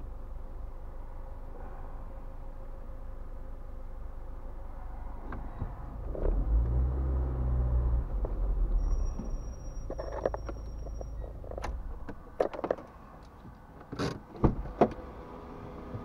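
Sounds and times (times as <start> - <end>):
car engine rumble inside cabin: 0.0 - 16.0.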